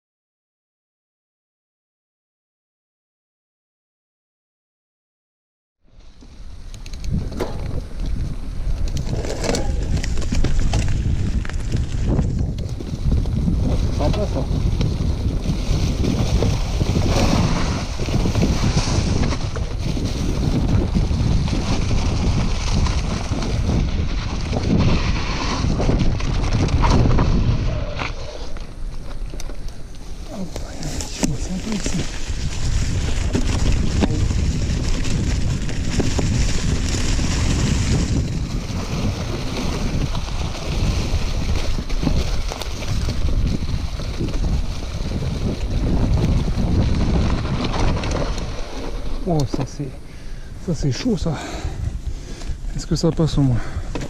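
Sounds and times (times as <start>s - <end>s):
tyres rolling over dry leaves: 6.0s - 51.2s
wind buffeting microphone: 6.4s - 54.0s.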